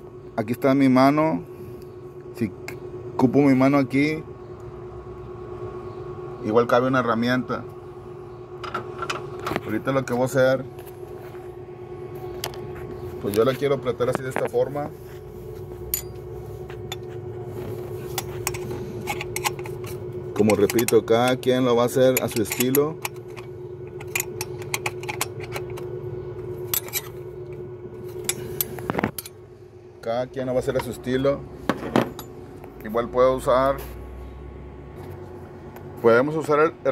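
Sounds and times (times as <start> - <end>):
steady background hum: 0.0 - 36.9.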